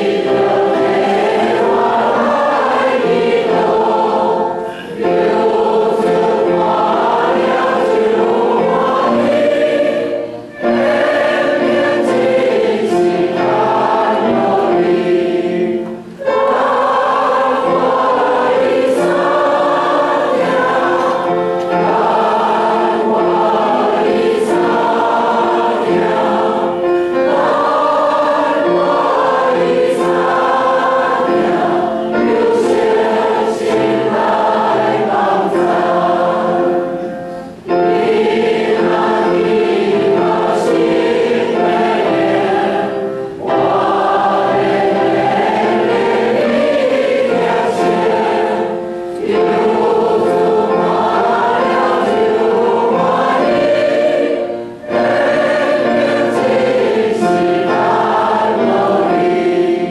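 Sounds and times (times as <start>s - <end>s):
voices singing a hymn: 0.0s - 59.9s.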